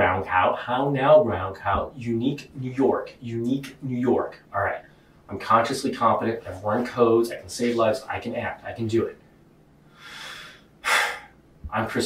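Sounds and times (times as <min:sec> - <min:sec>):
man breathing: 0:09.8 - 0:11.4.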